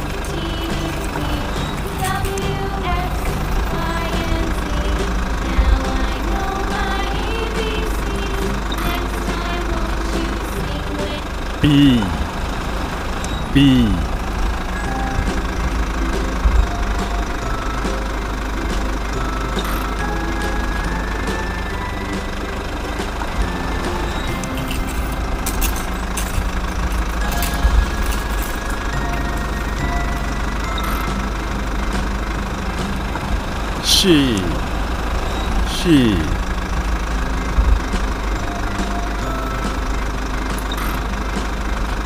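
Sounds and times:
person lip-trilling engine noise: 0:00.0 - 0:12.8, 0:13.4 - 0:14.8, 0:33.7 - 0:39.5.

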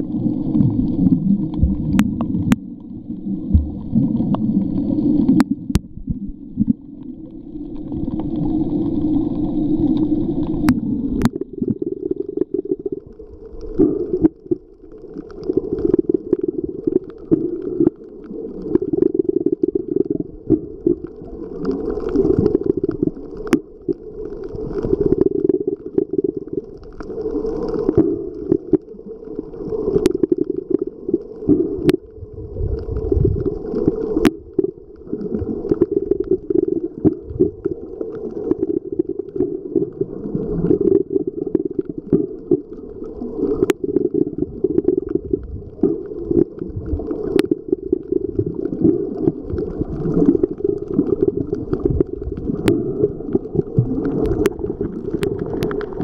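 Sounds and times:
underwater moving water rumble: 0:00.0 - 0:56.0.

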